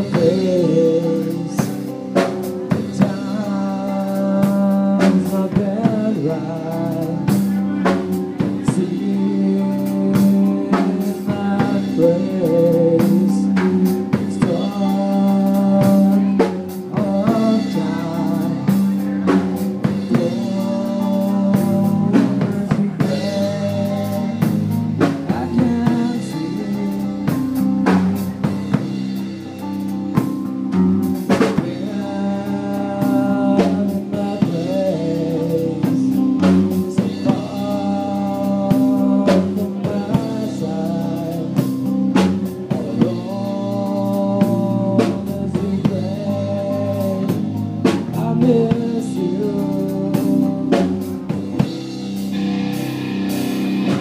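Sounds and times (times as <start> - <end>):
metal band playing: 0.0 - 54.0
drum hits: 50.2 - 54.0.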